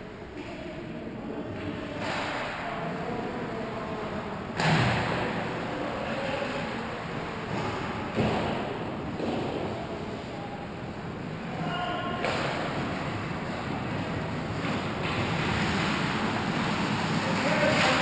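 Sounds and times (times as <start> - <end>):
faint distant voices: 0.0 - 18.0
hollow arena noise: 0.0 - 18.0
skating on ice: 12.7 - 18.0.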